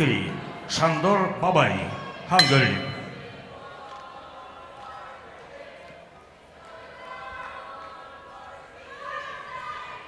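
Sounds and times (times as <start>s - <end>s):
distant voices echoing in hall: 0.0s - 10.0s.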